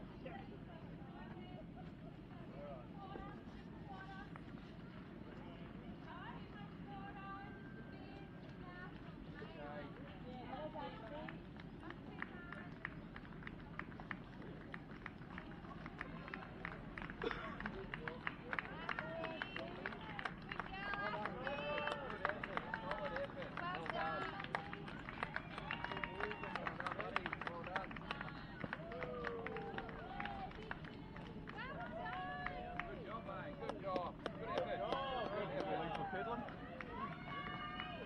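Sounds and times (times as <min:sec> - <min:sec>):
crowd talking and calling out: 0:18.7 - 0:38.0.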